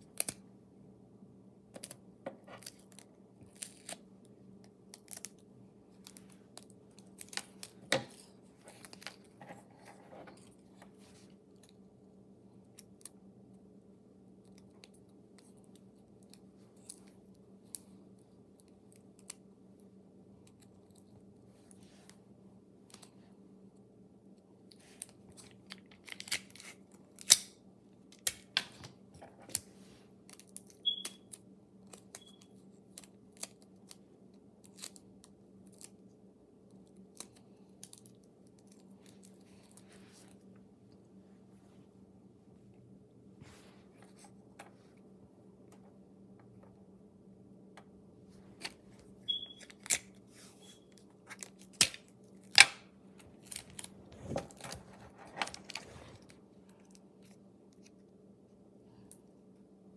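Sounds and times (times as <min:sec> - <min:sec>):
faint steady hum: 0:00.0 - 0:59.9
paper crinkling and creasing: 0:05.9 - 0:11.3, 0:53.2 - 0:57.4.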